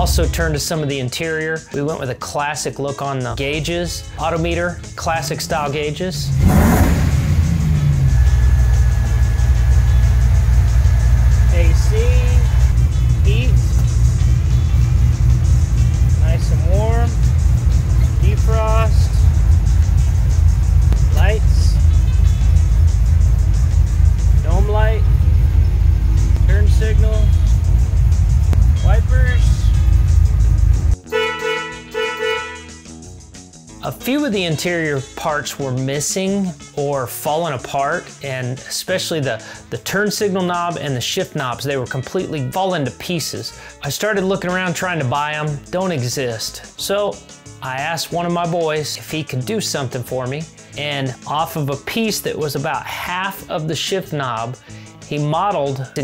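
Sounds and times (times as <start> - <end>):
music: 0.0 - 56.0
engine idling: 4.5 - 31.0.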